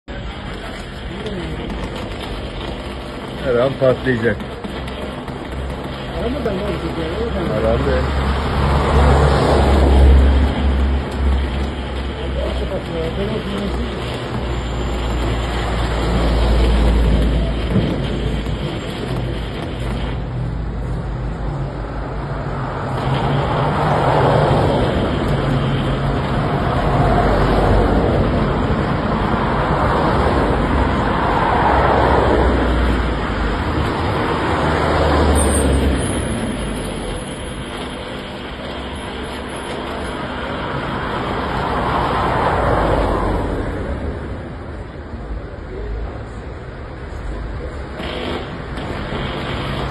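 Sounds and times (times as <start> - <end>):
low traffic rumble: 0.0 - 49.9
vehicles passing: 0.1 - 49.9.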